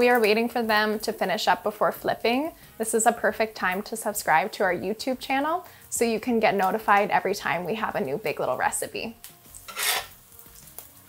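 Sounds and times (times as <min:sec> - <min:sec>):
oil sizzling in a skillet: 0:00.0 - 0:11.0
metal spatula sliding under food: 0:09.6 - 0:10.2.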